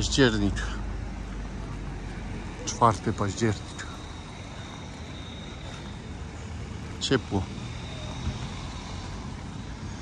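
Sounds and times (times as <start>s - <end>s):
light road traffic: 0.0s - 10.0s
faint high steady tone: 1.5s - 10.0s.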